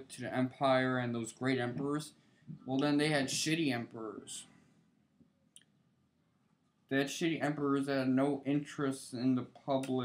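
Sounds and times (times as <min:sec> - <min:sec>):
man's voice: 0:00.0 - 0:04.5, 0:06.9 - 0:10.0.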